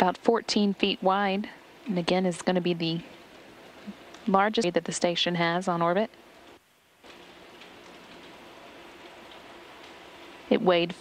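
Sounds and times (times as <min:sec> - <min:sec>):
faint low hum: 0:00.0 - 0:11.0
steady hiss: 0:00.0 - 0:11.0.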